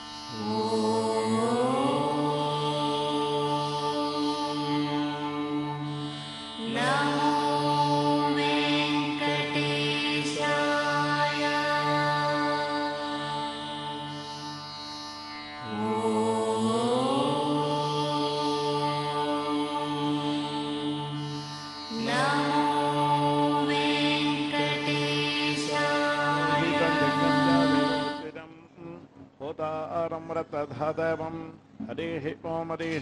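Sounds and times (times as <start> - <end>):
mantra chanting in held notes: 0.0 - 14.5, 15.6 - 33.0.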